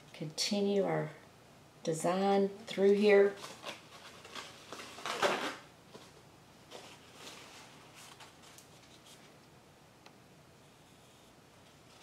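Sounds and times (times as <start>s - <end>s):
handling rustle: 2.9s - 9.4s.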